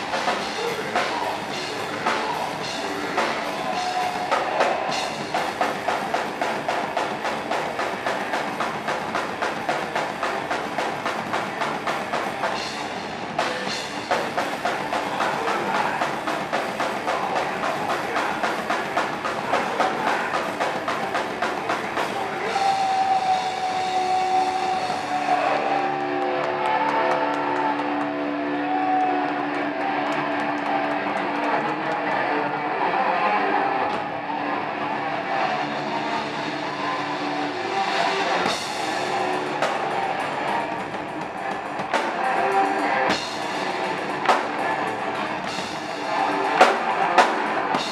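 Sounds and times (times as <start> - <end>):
drum kit with cymbals: 0.0 - 26.0, 35.8 - 47.9
distorted electric guitar: 0.0 - 47.9.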